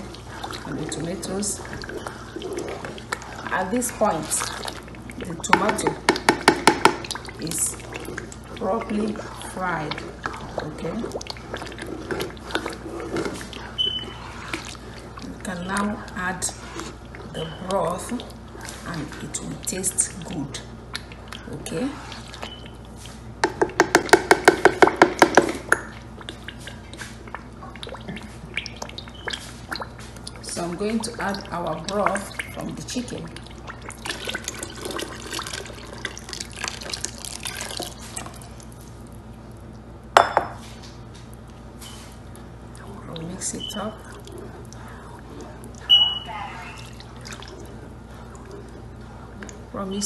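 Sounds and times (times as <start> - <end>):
stew simmering pops: 0.0 - 49.7
spoon knocking against pot: 5.5 - 7.0, 23.4 - 25.9.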